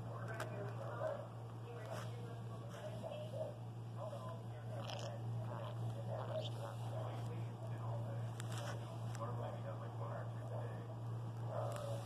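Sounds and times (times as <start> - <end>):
scratchy beak nibbling: 4.2 - 7.2.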